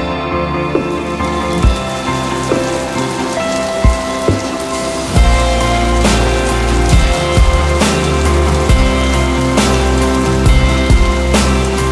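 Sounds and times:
slow instrumental music: 0:00.0 - 0:11.9
heavy rain hiss: 0:00.8 - 0:11.9
deep bass: 0:04.9 - 0:11.9.

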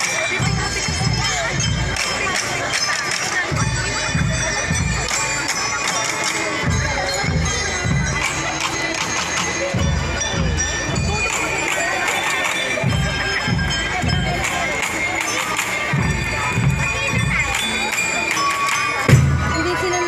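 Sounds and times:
crowd noise: 0:00.0 - 0:20.0
ringing bell-lyre notes: 0:00.0 - 0:20.0
snare drums: 0:00.0 - 0:20.0
bass drum beats: 0:19.1 - 0:20.0.

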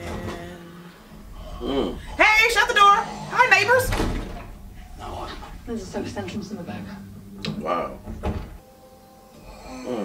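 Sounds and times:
door thudding: 0:00.0 - 0:08.6.

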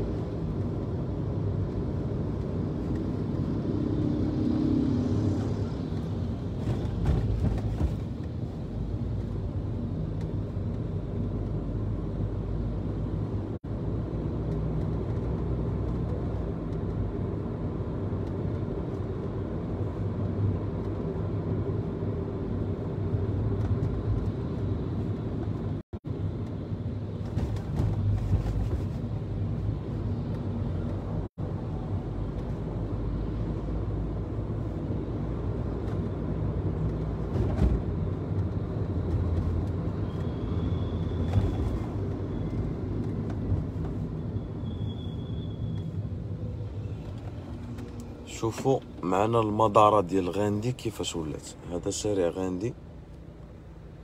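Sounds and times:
car engine and road rumble: 0:00.0 - 0:54.0.

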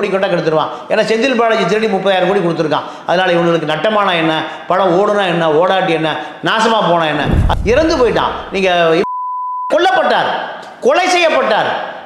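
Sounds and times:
man speaking: 0:07.1 - 0:09.0
censor bleep: 0:09.0 - 0:09.8.

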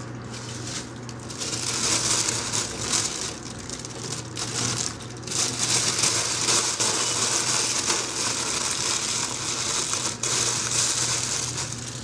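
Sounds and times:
plastic bag crinkling: 0:00.2 - 0:12.0.

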